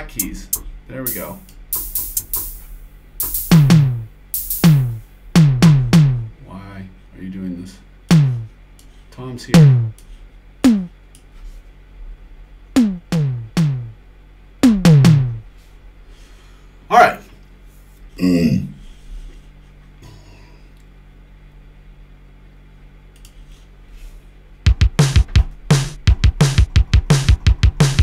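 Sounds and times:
electronic drum hits: 0.0 - 6.3, 8.1 - 8.5, 9.5 - 10.0, 10.6 - 11.0, 12.8 - 14.0, 14.6 - 15.4, 24.7 - 28.0.

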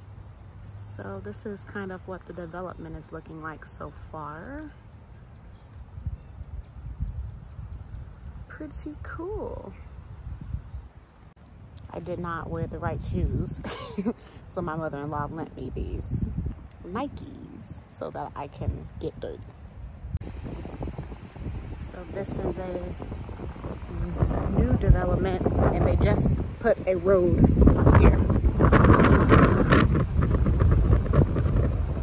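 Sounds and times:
wind buffeting microphone: 0.6 - 32.0.

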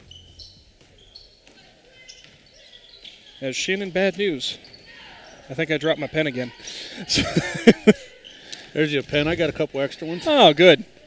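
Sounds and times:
short high squeaks: 0.0 - 3.4.

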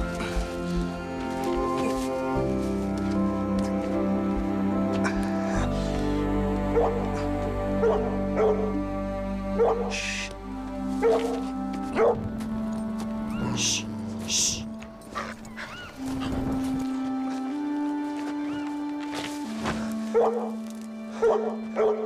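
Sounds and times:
orchestral film music: 0.0 - 22.0
dog barking: 6.7 - 7.0, 7.8 - 8.7, 9.6 - 10.0, 11.0 - 11.3, 11.9 - 12.2, 20.1 - 20.5, 21.2 - 22.0.

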